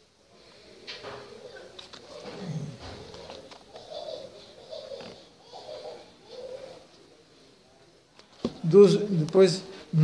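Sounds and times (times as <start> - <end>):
dove cooing: 1.2 - 6.9.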